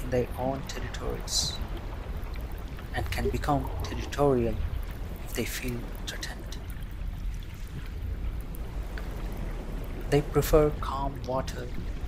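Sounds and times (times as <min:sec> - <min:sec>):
low rumble of moving water: 0:00.0 - 0:12.0.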